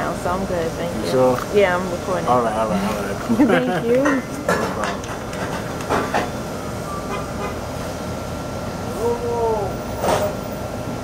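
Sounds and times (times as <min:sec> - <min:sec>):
room hum and rumble: 0:00.0 - 0:11.0
person laughing: 0:03.3 - 0:03.9.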